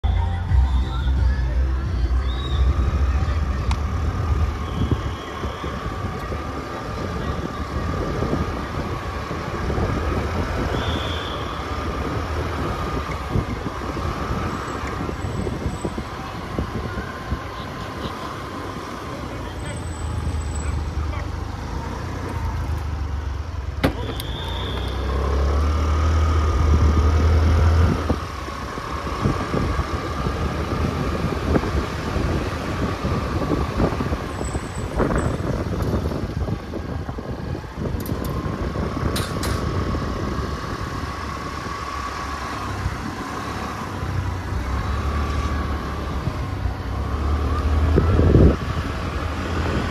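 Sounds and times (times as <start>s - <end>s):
car engine and tyres rumbling: 0.0s - 49.9s
wind buffeting microphone: 3.1s - 10.9s, 11.7s - 19.2s, 26.2s - 45.0s, 45.8s - 49.9s.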